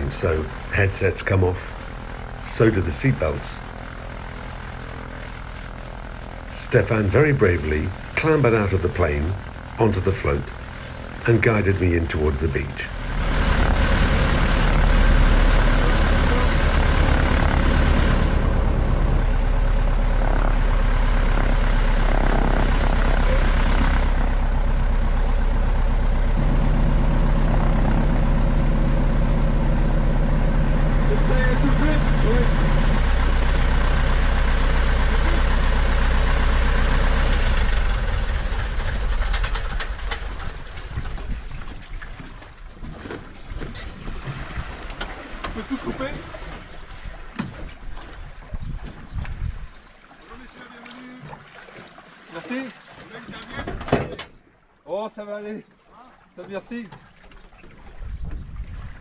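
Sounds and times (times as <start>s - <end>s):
small plane engine and propeller: 0.0s - 52.2s
water splashing: 40.2s - 48.6s, 49.6s - 53.8s.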